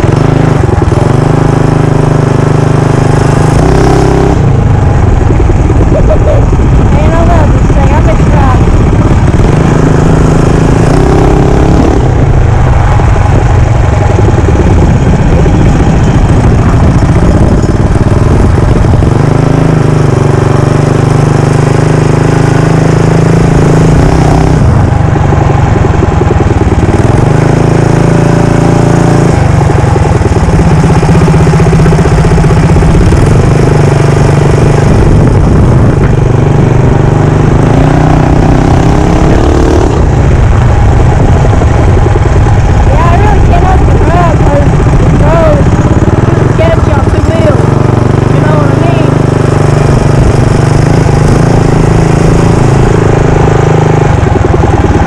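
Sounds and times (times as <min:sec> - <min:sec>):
mini bike engine revving: 0:00.0 - 0:55.0.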